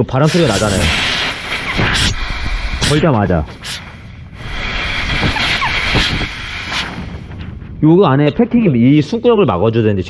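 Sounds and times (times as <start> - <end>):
compressed air hissing: 0.0 - 7.8.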